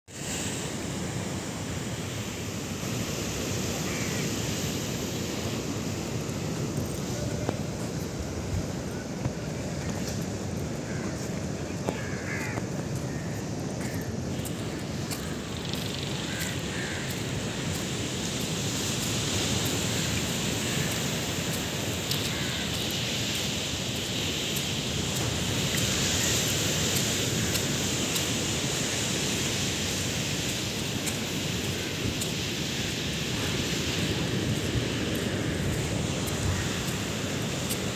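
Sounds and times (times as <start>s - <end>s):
sea surf: 0.1s - 37.9s.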